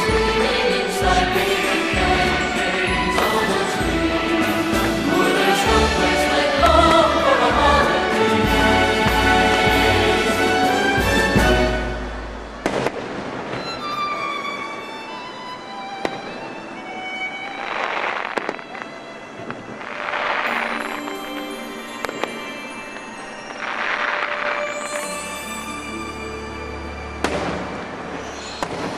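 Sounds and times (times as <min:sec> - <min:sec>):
orchestral music with strings: 0:00.0 - 0:28.9
fireworks bangs: 0:10.9 - 0:14.3, 0:17.6 - 0:25.3, 0:27.2 - 0:28.9
firework bang: 0:12.5 - 0:13.7, 0:27.2 - 0:28.9.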